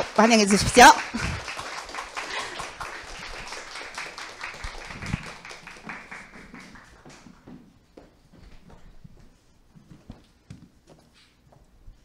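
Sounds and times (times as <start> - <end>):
audience applauding: 0.0 - 7.5.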